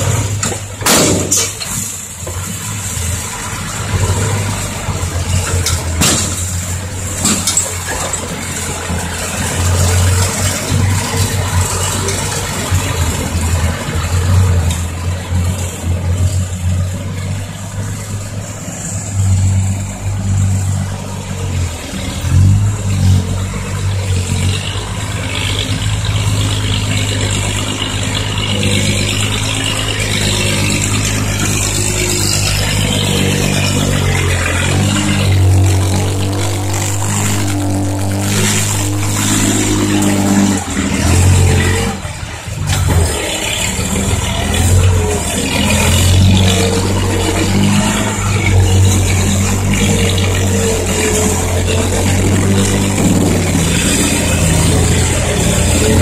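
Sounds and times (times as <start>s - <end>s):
dump truck diesel engine: 0.0s - 56.0s.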